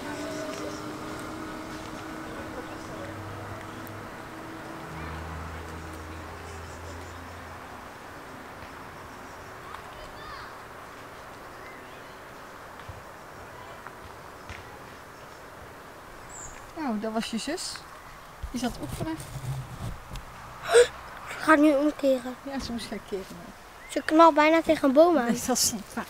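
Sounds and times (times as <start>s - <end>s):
small car engine pulling away: 0.0s - 7.8s.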